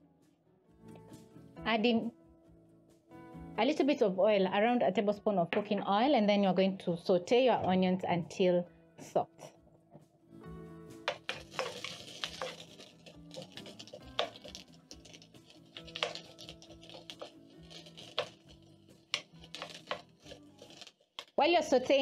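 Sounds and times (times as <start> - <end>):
soft background music: 0.0 - 22.0
onions sauteing in oil: 11.1 - 21.4
wooden spatula scraping wok: 11.1 - 21.4.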